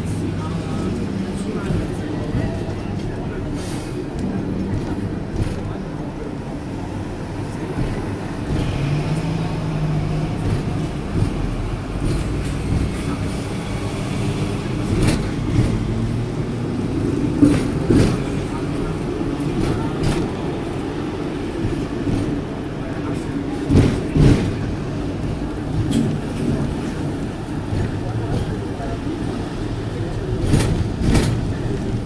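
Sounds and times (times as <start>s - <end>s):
city traffic: 0.0s - 32.0s
tram rumbling on track: 0.0s - 32.0s.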